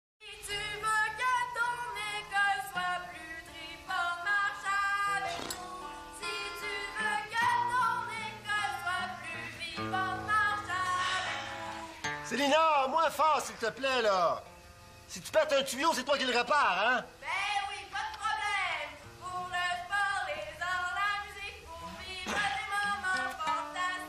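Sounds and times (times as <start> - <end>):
person singing: 0.2 - 12.1, 17.2 - 24.0
sustained instrumental accompaniment: 10.1 - 13.0.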